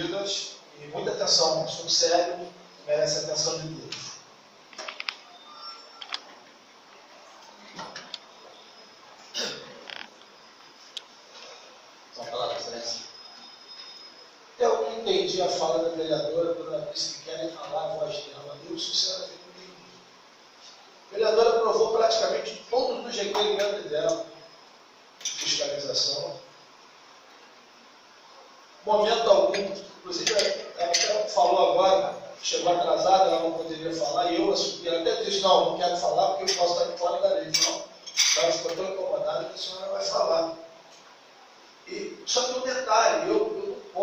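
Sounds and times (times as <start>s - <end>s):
man speaking into microphone: 0.0s - 4.2s, 14.6s - 19.9s, 21.1s - 24.4s, 25.4s - 26.5s, 28.8s - 40.8s, 41.9s - 44.0s.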